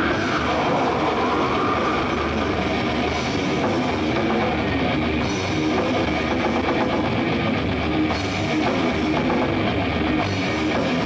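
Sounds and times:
thrash metal band playing live: 0.0s - 11.0s.

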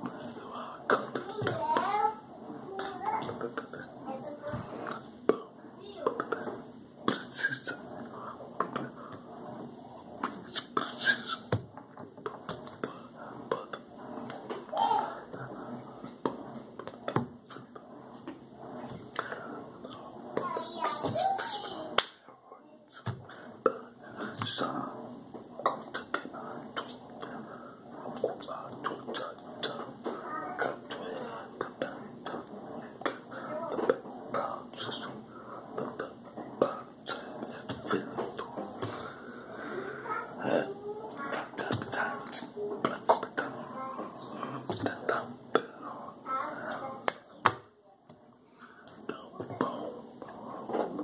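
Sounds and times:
soft vocal sounds and breaths: 0.0s - 47.4s, 48.2s - 51.0s
hand snap or clap: 22.0s - 22.2s.

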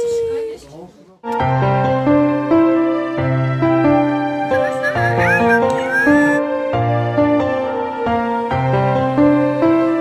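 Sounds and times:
dog whining yelps: 4.6s - 6.4s.

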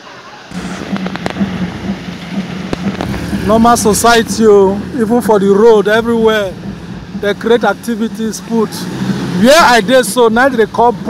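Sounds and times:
sharp clicks: 0.5s - 4.4s
fountain jets splashing into basin: 0.5s - 11.0s
steady low hum: 0.5s - 11.0s.

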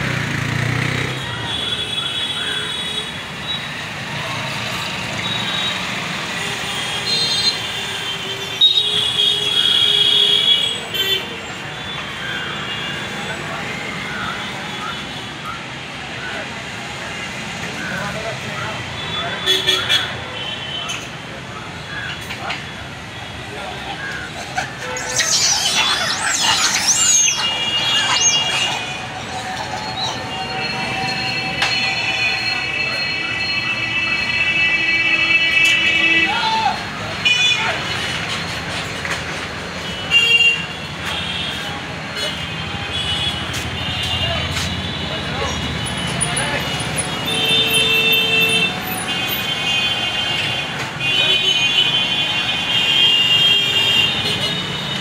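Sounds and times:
outdoor background noise: 0.0s - 55.0s
monkeys screeching: 23.8s - 32.6s
high steady beeping tones: 24.8s - 34.6s.

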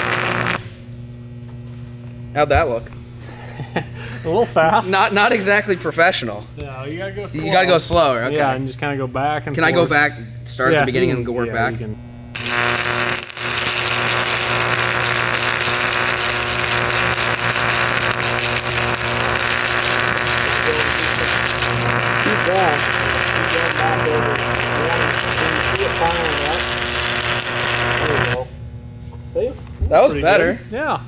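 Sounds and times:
welding arc crackling: 0.0s - 2.5s, 12.1s - 28.6s
steady low hum: 0.0s - 31.0s.

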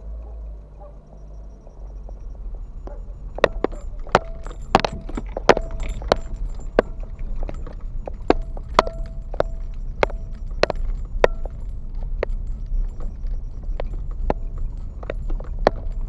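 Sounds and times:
car rolling over gravel: 1.8s - 16.0s.

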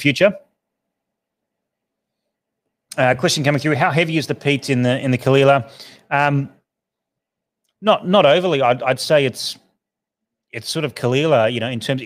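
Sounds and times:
man's voice: 2.9s - 6.5s, 7.8s - 9.6s, 10.6s - 12.0s.

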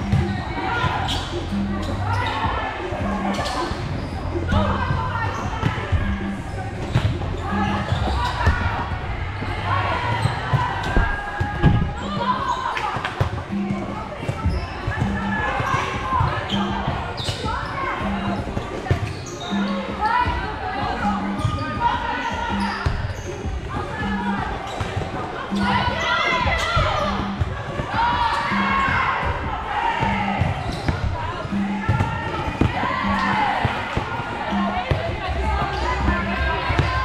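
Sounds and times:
volleyball hits and bounces: 0.0s - 1.3s, 24.8s - 37.0s
players calling out: 0.0s - 37.0s.

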